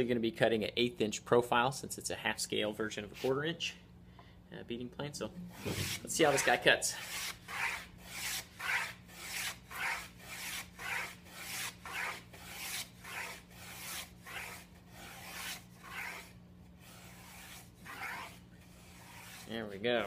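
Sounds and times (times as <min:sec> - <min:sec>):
faint steady hum: 0:00.0 - 0:20.0
wood plane rasping strokes: 0:05.5 - 0:19.7.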